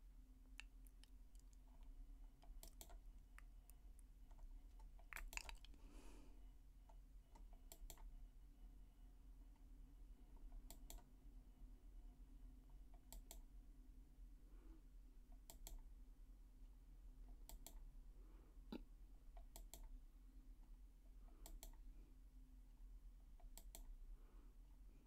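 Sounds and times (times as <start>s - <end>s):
low steady hum: 0.0s - 25.0s
computer mouse clicks: 2.4s - 3.0s, 6.9s - 8.1s, 10.6s - 11.0s, 13.0s - 13.5s, 15.4s - 15.8s, 17.4s - 17.8s, 19.4s - 19.9s, 21.4s - 21.8s, 23.4s - 23.9s.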